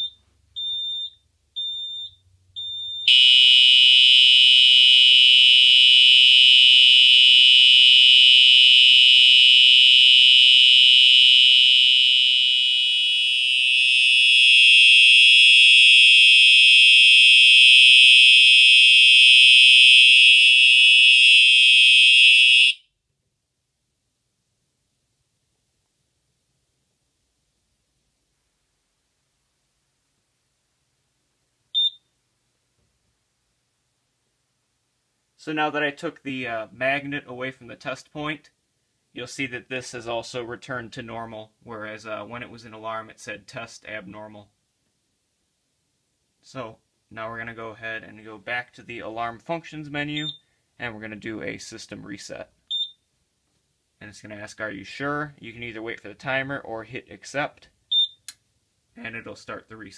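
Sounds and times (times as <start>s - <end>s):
fire alarm tone: 0.0s - 22.9s, 31.8s - 32.0s, 50.2s - 50.4s, 57.9s - 58.2s.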